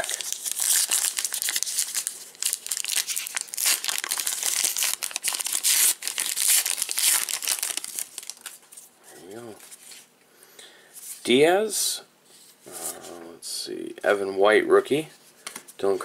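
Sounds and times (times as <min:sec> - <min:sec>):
plastic wrapper tearing and crinkling: 0:00.0 - 0:08.8.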